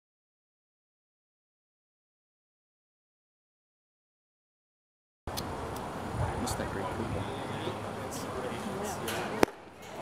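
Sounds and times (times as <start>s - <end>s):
murmur of spectators' voices: 5.5s - 10.0s.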